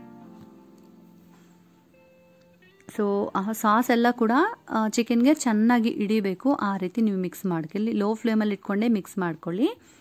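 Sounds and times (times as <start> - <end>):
soft sustained chord music: 0.0 - 5.5.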